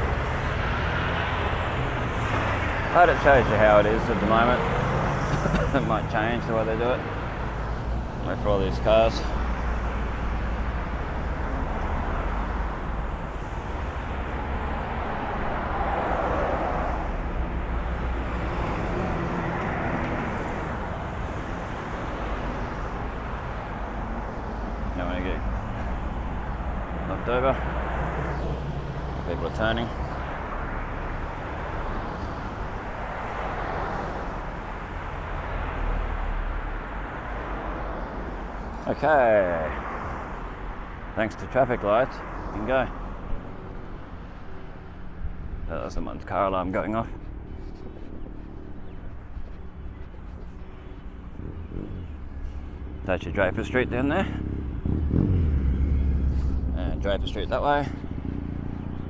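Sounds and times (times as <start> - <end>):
traffic engine rumble and tyre noise: 0.0 - 59.0.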